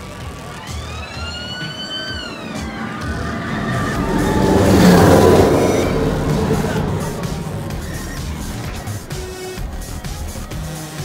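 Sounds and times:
roller coaster whine: 0.0 - 10.7.

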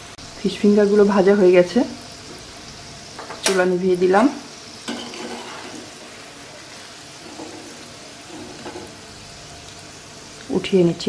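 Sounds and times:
hot oil sizzling: 0.0 - 11.0.

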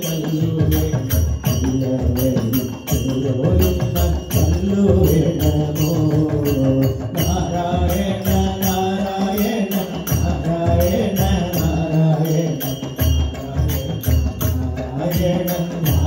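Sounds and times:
brass hand cymbals: 0.0 - 16.0
tabla: 0.0 - 16.0
voices singing a hymn: 0.0 - 16.0.

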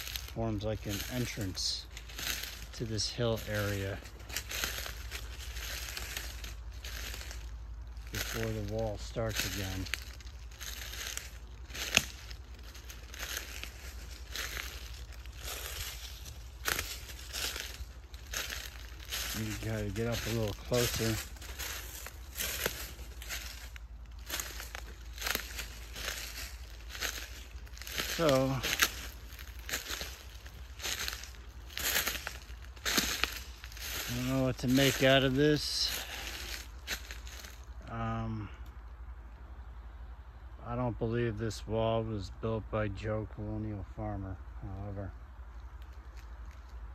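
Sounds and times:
footsteps crunching on forest floor: 0.0 - 38.9, 40.7 - 46.9
steady low rumble: 0.0 - 46.9.

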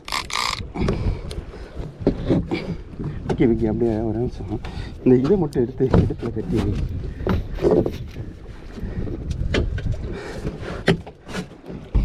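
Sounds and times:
wind on microphone: 0.0 - 11.0.

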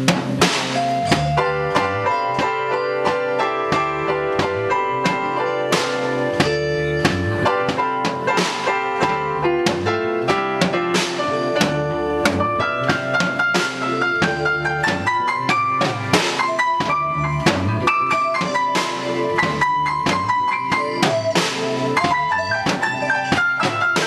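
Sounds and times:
drum kit beat: 0.0 - 24.0
guitar: 0.0 - 24.0
keyboard: 0.0 - 24.0.

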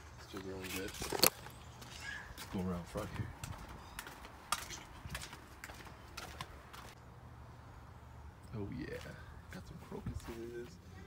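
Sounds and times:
footsteps on concrete: 0.0 - 7.0.

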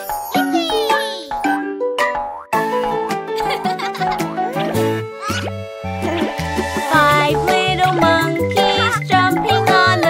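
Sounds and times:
children's cartoon music: 0.0 - 10.0.

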